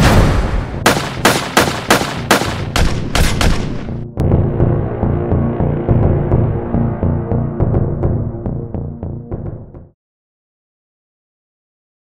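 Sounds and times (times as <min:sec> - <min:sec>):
gunshots: 0:00.0 - 0:04.0
soundtrack music: 0:00.0 - 0:10.0.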